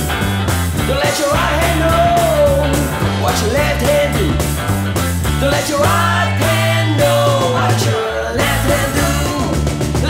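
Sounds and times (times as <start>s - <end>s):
rock song: 0.0s - 10.0s.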